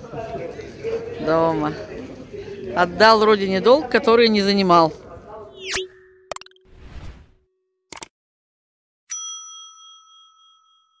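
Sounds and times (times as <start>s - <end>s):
bright bell ding: 9.1s - 11.0s.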